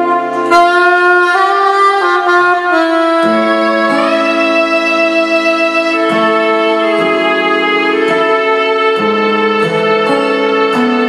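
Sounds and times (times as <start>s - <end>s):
slow instrumental ballad: 0.0s - 11.0s.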